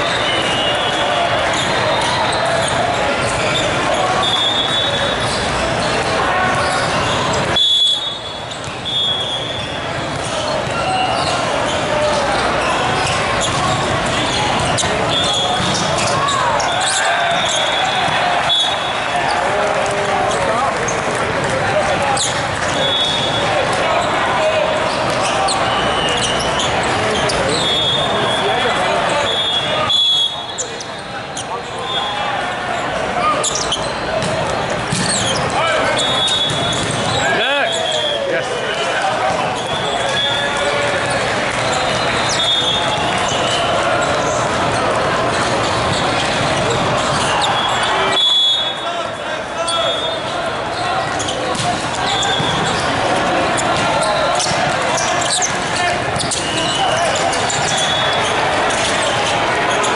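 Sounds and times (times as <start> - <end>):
volleyballs hit and bouncing: 0.0 - 48.4, 49.8 - 59.9
babble of voices: 0.0 - 59.9
referee whistle blasts: 0.1 - 2.4, 4.2 - 5.2, 7.6 - 9.8, 15.1 - 15.8, 16.6 - 19.0, 22.8 - 23.5, 27.5 - 30.7, 35.9 - 36.8, 47.4 - 49.0.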